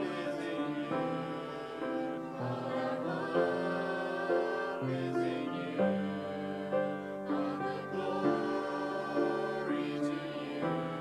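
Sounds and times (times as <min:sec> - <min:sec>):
group singing a hymn: 0:00.0 - 0:11.0
upright piano: 0:00.0 - 0:11.0.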